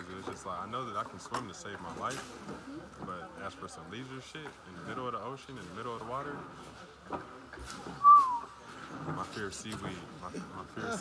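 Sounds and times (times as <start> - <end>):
short whistle-like tone: 8.0 - 8.6.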